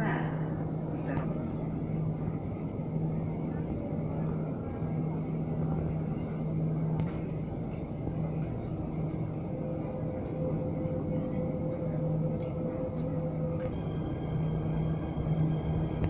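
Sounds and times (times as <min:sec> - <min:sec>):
train carriage rumble and hum: 0:00.0 - 0:16.0.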